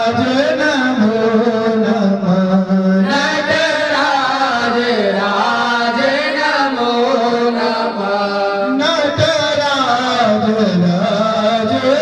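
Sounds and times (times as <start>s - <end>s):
male priests chanting: 0.0s - 12.0s.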